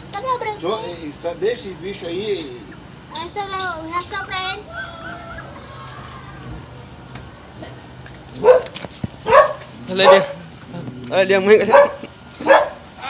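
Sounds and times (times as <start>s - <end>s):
dog barking loudly: 8.4s - 10.4s, 11.6s - 12.9s.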